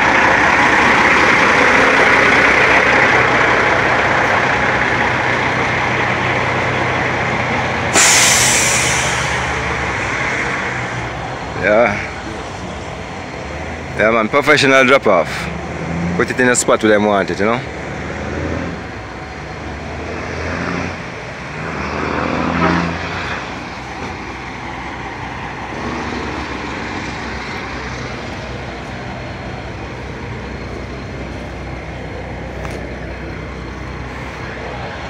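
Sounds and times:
truck diesel engine running: 0:00.0 - 0:35.0.

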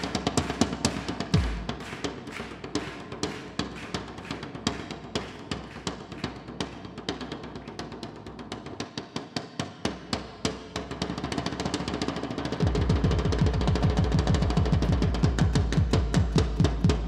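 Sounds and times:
fast drumming on homemade drums: 0:00.0 - 0:17.0.

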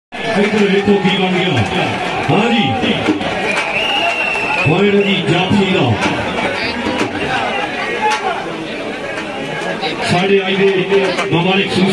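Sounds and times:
crowd chattering: 0:00.1 - 0:11.9.

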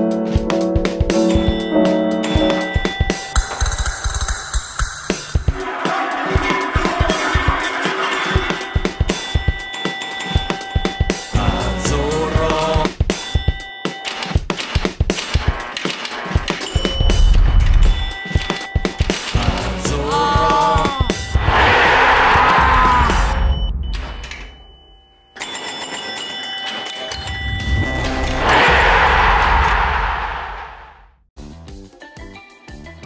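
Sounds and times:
television ident music: 0:05.3 - 0:12.8.

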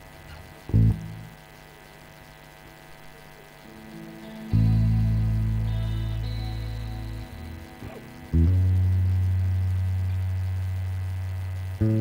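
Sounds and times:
deep humming note from band: 0:03.7 - 0:12.0.

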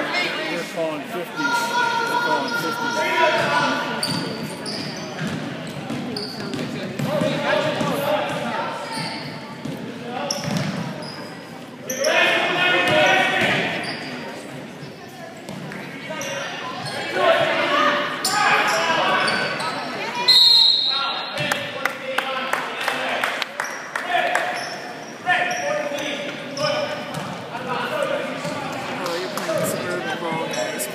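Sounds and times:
sneakers squeaking on hardwood: 0:03.4 - 0:07.4, 0:08.3 - 0:12.0, 0:12.9 - 0:17.1, 0:26.5 - 0:27.4
basketball bouncing: 0:27.1 - 0:27.4.

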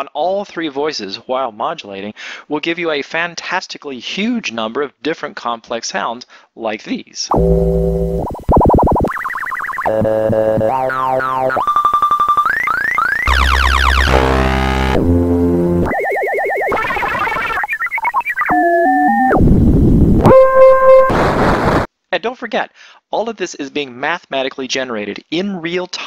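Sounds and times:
retro electronic sound effects: 0:07.3 - 0:21.9.

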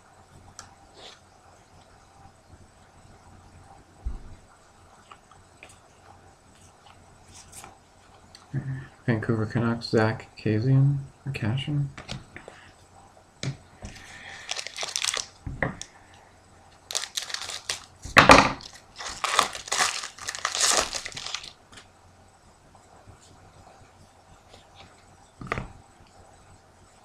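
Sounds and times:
foil wrapper tearing and crinkling: 0:13.9 - 0:15.4, 0:16.9 - 0:17.9, 0:18.6 - 0:21.8.

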